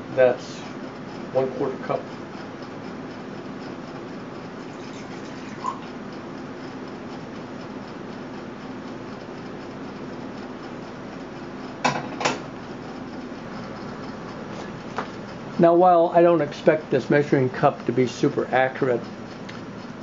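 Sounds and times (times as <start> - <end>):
water pouring into glass cup: 4.6 - 5.9.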